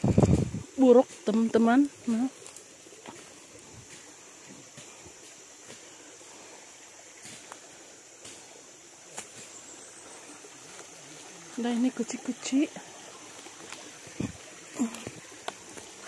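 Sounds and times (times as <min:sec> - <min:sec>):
high-pitched background hiss: 0:00.0 - 0:16.0.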